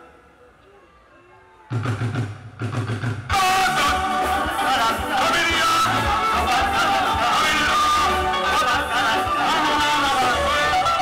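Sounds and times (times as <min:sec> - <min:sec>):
drums: 0:01.7 - 0:11.0
live band playing: 0:01.7 - 0:11.0
heavy bass line: 0:01.8 - 0:11.0.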